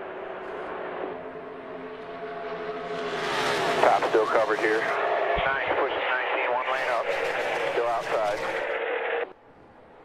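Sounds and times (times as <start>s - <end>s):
race car engines at full speed: 0.0s - 10.0s.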